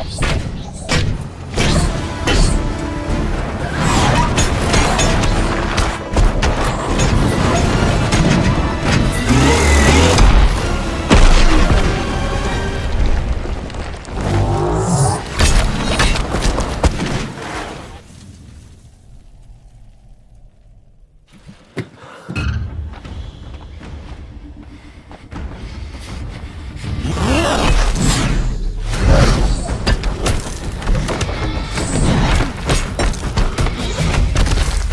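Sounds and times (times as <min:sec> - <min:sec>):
dramatic music score: 0:00.0 - 0:20.8, 0:22.1 - 0:34.9
truck engine revving: 0:08.5 - 0:11.2.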